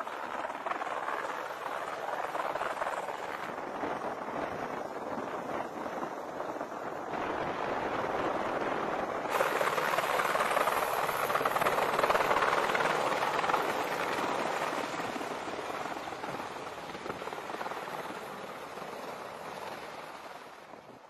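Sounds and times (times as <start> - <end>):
helicopter flying overhead: 0.0 - 21.0.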